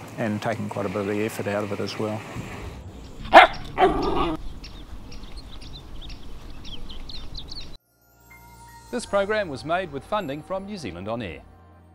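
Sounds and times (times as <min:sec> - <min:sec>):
small dog barking: 0:03.3 - 0:04.4.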